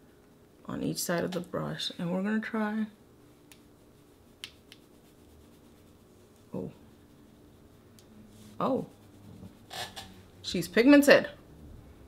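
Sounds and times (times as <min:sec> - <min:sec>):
low steady hum: 0:00.0 - 0:12.0
brush dusting powder on face: 0:03.6 - 0:09.8.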